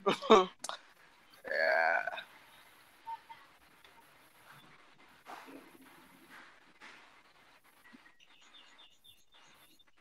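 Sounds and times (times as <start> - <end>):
faint scattered noises: 0.0 - 10.0
person making short vocal sound: 1.5 - 2.2.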